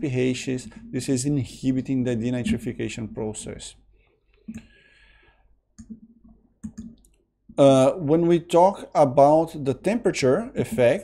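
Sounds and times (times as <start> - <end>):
soft clicks: 5.8 - 7.2.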